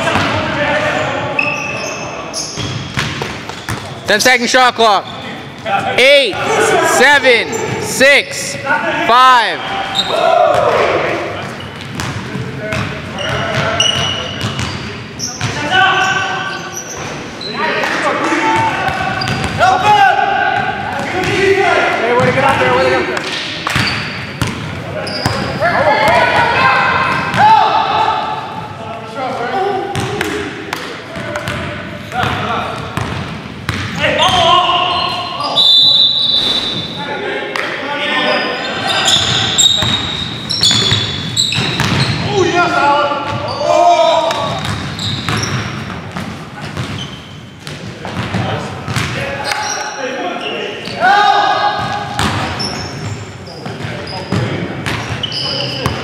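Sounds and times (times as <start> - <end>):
players calling out: 3.5 - 33.0, 33.8 - 45.9.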